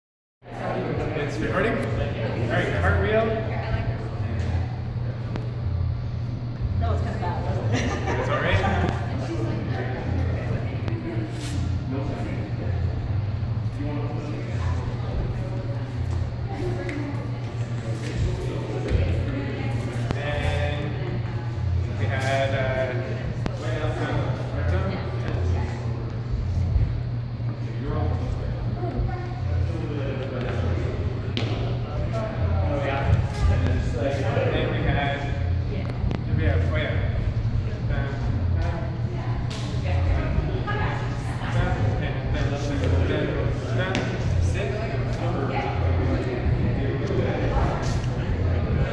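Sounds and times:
steady low hum: 0.4 - 48.9
voices talking in a large room: 0.4 - 48.9
steady low rumble: 0.5 - 48.9.

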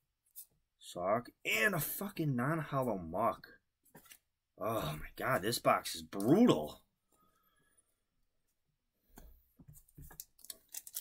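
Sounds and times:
foil wrapper and cards crinkling: 10.1 - 11.0.

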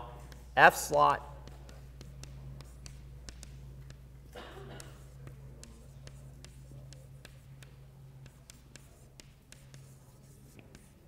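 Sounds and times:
chalk tapping on chalkboard: 0.0 - 0.6, 1.4 - 11.0
steady low hum: 0.0 - 11.0.

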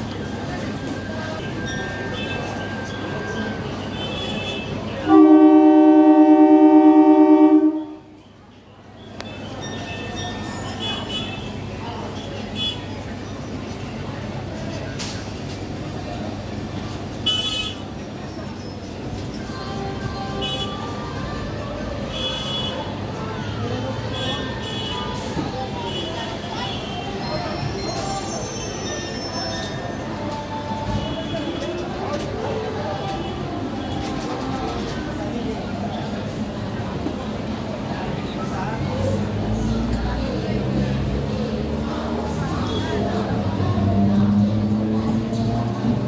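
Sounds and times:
low train rumble: 0.0 - 46.0
platform crowd hubbub: 0.0 - 46.0
scattered voices: 0.0 - 46.0
train wheels squealing on rails: 0.1 - 5.1, 8.2 - 17.2, 17.8 - 36.3
train horn blast: 4.2 - 8.2.

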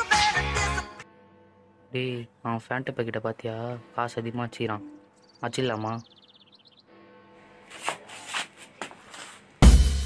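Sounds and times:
faint background music: 0.0 - 10.0
soft rustling scuffs: 7.6 - 9.6.

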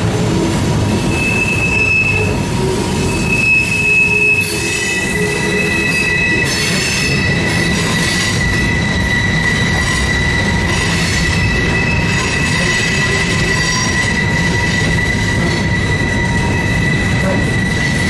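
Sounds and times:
wheels rumbling on rail: 0.0 - 18.0
train wheels squealing: 0.9 - 18.0.

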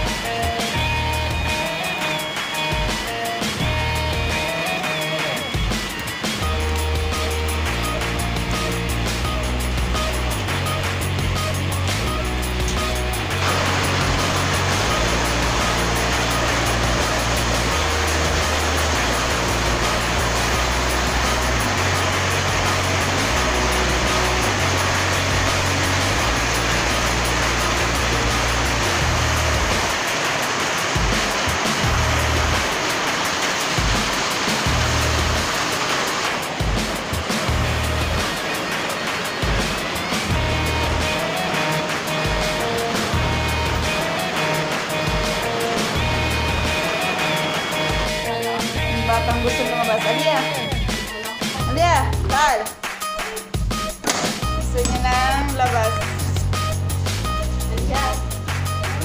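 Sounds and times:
music with stepping bass line: 0.0 - 30.0, 30.9 - 32.8, 36.5 - 59.0
heavy rain rushing: 0.0 - 59.0.

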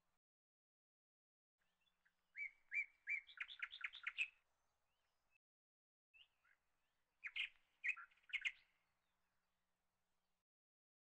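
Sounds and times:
small bird chirping: 1.8 - 4.4, 7.2 - 8.7.

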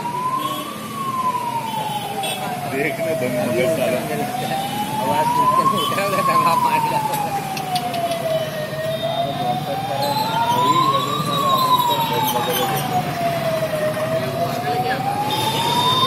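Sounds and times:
fire engine siren wailing: 0.0 - 16.0
crowd chatter: 1.0 - 16.0.

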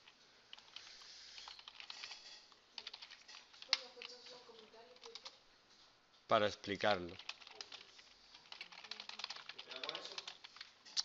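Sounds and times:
computer keyboard typing: 0.0 - 5.4, 7.0 - 11.0.

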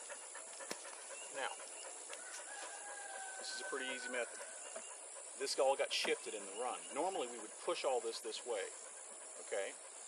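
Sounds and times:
insects chorus: 0.0 - 10.0.

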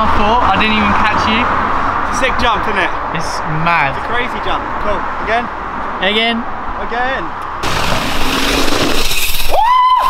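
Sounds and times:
bike tyres on dirt: 7.6 - 10.0.

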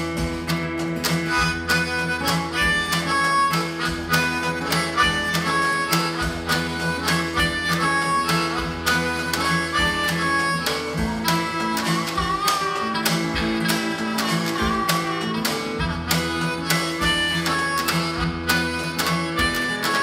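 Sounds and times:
harmonica playing blues: 0.0 - 20.0
strummed acoustic guitar: 0.0 - 20.0.

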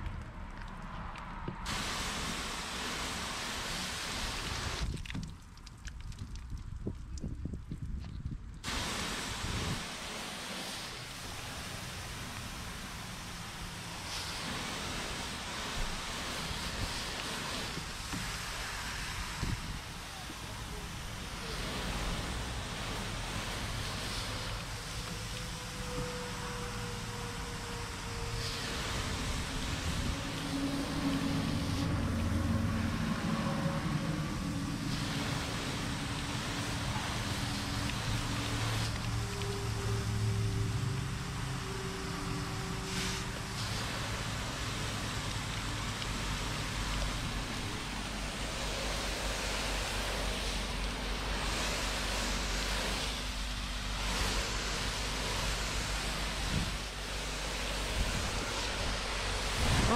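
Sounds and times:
water spray hitting car panel: 1.6 - 5.3, 8.6 - 25.7, 34.0 - 39.6, 42.9 - 59.9.

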